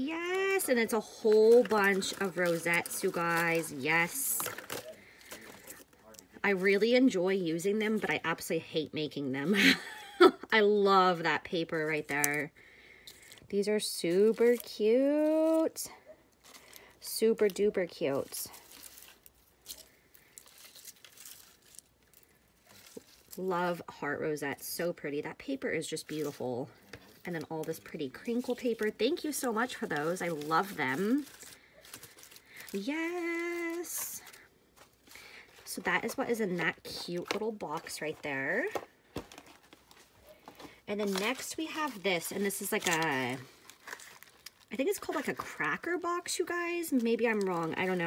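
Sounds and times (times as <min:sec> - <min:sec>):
faint paper rustling: 0:00.5 - 0:06.8, 0:14.1 - 0:23.5, 0:26.0 - 0:48.0.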